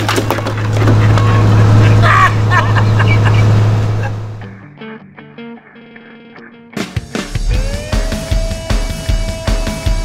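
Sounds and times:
diesel engine humming: 0:00.0 - 0:04.6.

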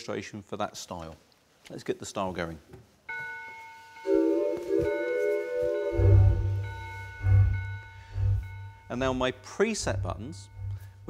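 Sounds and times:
organ chords: 0:04.1 - 0:11.0
bass line and drum beat: 0:06.0 - 0:11.0.

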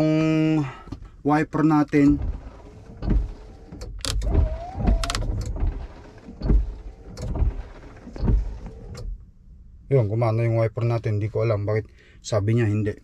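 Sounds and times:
wiper blades thumping: 0:01.9 - 0:09.2
wiper motor whine: 0:02.0 - 0:09.1.

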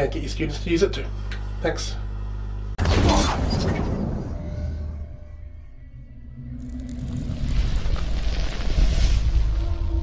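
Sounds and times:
deep low rumble: 0:03.6 - 0:10.0.

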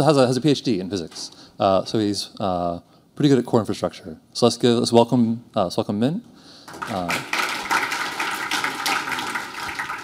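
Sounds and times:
audience applauding: 0:06.7 - 0:10.0.

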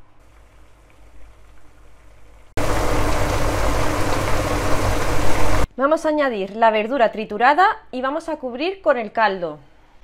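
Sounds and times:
wine boiling in a pan: 0:00.0 - 0:05.7.

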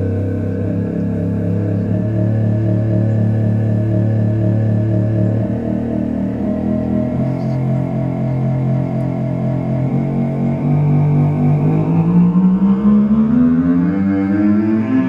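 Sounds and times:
sustained low synth note: 0:00.0 - 0:15.0.

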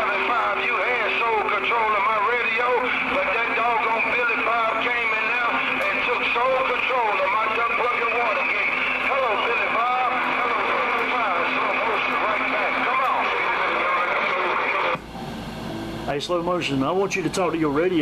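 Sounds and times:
garbled radio voices: 0:00.0 - 0:15.0
radio hiss: 0:00.0 - 0:15.0.

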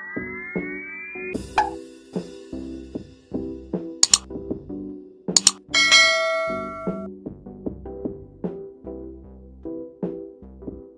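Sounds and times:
background music with a beat: 0:00.0 - 0:10.9
mouse clicks: 0:04.0 - 0:04.3, 0:05.4 - 0:05.6
notification bell ding: 0:05.8 - 0:07.1.

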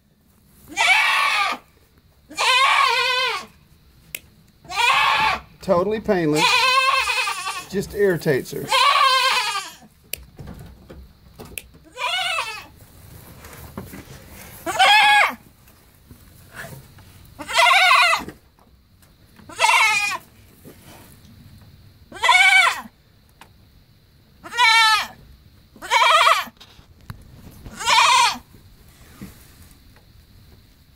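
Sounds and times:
goat bleating: 0:00.7 - 0:01.7, 0:02.3 - 0:03.6, 0:04.6 - 0:05.5, 0:06.3 - 0:09.9, 0:11.8 - 0:12.7, 0:14.6 - 0:15.4, 0:17.4 - 0:18.3, 0:19.5 - 0:20.3, 0:22.1 - 0:22.9, 0:24.4 - 0:25.2, 0:25.8 - 0:26.6, 0:27.7 - 0:28.5.

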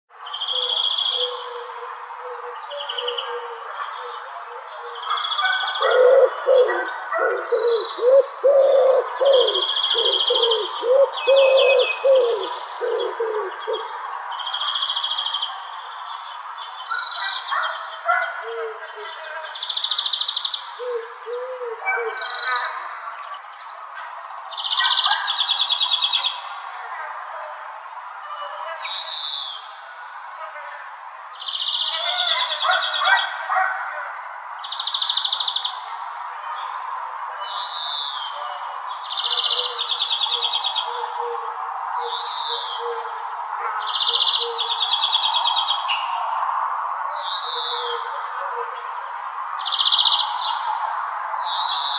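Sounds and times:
songbirds chirping and singing: 0:00.1 - 0:51.9.

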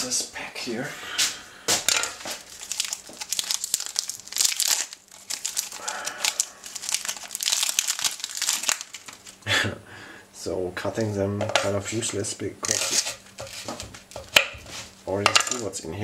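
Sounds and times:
foil wrapper crinkling: 0:01.9 - 0:09.4, 0:12.6 - 0:15.7.

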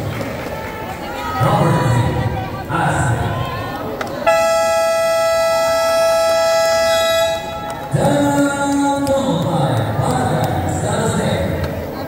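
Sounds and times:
basketball buzzer tone: 0:04.3 - 0:08.0.

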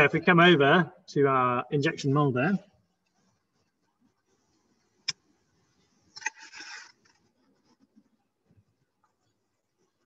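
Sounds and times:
rustling scrape: 0:06.1 - 0:08.0.

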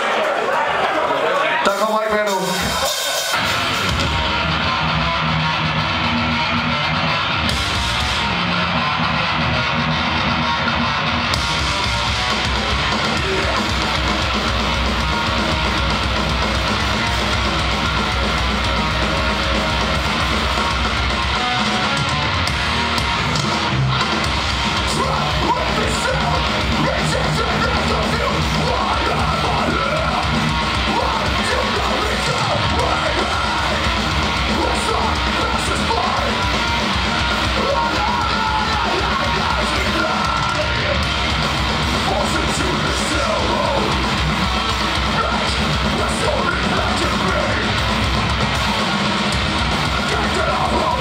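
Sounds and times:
thrash metal band playing live: 0:01.6 - 0:51.0.

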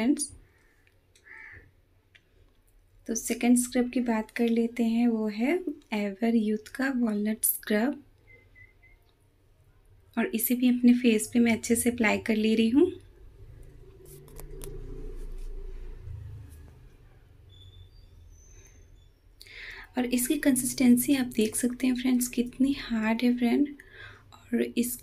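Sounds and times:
crow cawing: 0:01.2 - 0:01.7.

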